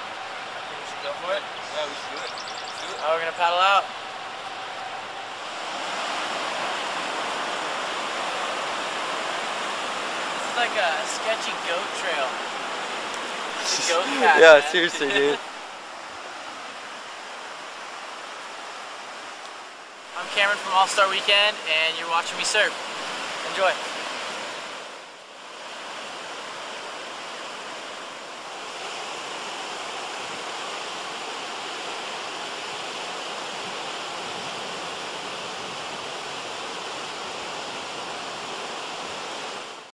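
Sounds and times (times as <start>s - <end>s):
ocean surf breaking: 0.0s - 39.9s.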